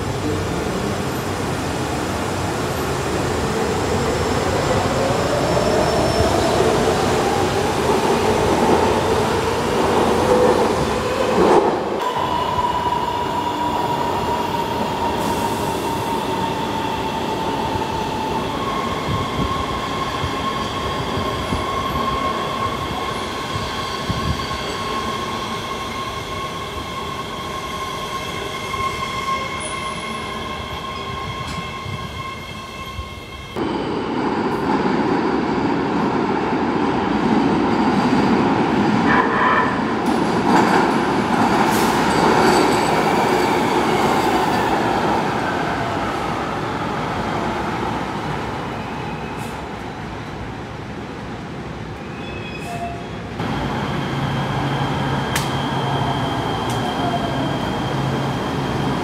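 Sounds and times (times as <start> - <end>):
subway train high whine: 0.0 - 59.0
train pulling in rumble: 0.0 - 59.0.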